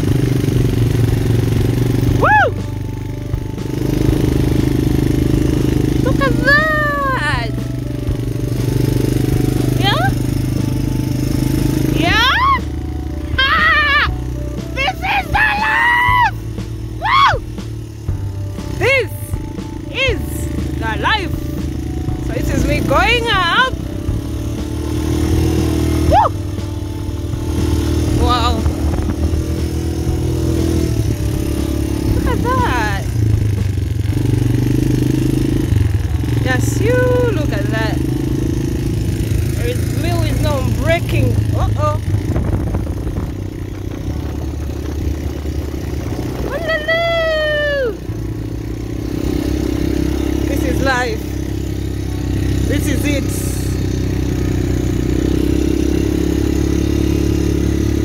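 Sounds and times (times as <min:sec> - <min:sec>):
quad bike engine running: 0:00.0 - 0:58.0
person singing or calling out: 0:02.2 - 0:02.7, 0:06.0 - 0:07.6, 0:12.1 - 0:16.4, 0:46.4 - 0:48.1.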